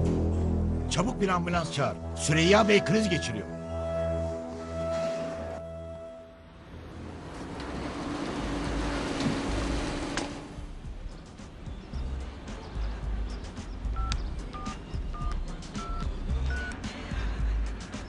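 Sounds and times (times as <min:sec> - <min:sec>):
background music: 0:00.0 - 0:18.0
phone keypad beeps: 0:14.0 - 0:16.8.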